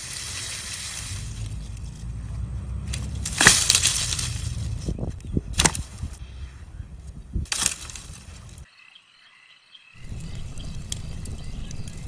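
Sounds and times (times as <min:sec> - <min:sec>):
twigs snapping and crunching: 0:00.0 - 0:06.2, 0:07.0 - 0:08.7, 0:10.0 - 0:12.0
low steady rumble: 0:00.8 - 0:07.0, 0:10.0 - 0:12.0
sharp branch cracks: 0:02.8 - 0:06.2, 0:07.4 - 0:08.6.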